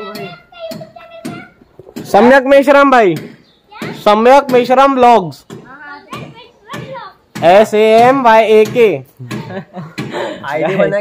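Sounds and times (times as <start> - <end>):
child shouting: 0.0 - 1.6, 3.7 - 4.1, 5.7 - 7.2
child talking: 0.0 - 1.7, 3.6 - 4.1, 5.6 - 7.3.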